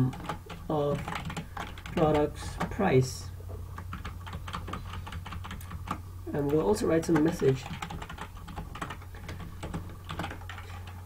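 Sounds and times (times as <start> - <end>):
keyboard keys clicking: 0.0 - 2.8, 3.8 - 11.0
steady low hum: 0.0 - 11.0.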